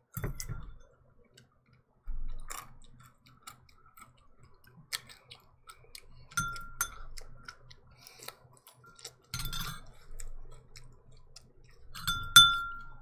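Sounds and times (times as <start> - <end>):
crisp chewing crunches: 2.3 - 6.3, 7.1 - 9.3.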